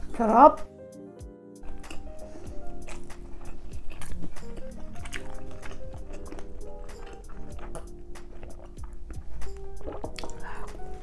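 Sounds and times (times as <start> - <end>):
background music: 0.0 - 11.0
slurping broth: 1.7 - 11.0.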